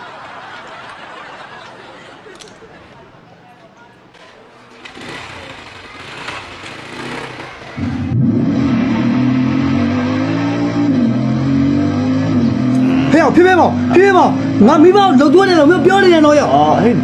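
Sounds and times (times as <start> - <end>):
motorcycle engine running: 4.2 - 9.1.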